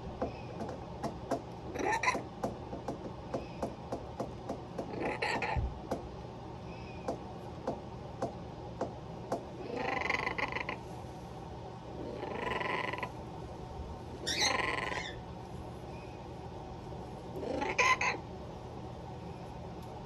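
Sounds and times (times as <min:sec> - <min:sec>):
parrots making raspy calls: 0:01.7 - 0:02.3, 0:04.9 - 0:05.6, 0:09.6 - 0:10.8, 0:12.0 - 0:13.2, 0:14.2 - 0:15.2, 0:17.4 - 0:18.3.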